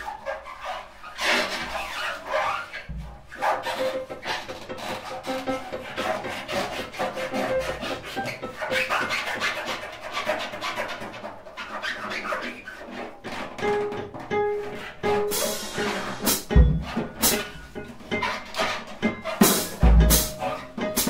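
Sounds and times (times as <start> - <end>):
piano strings scraped by hand: 0.0 - 21.0
drum kit clattering: 2.9 - 21.0.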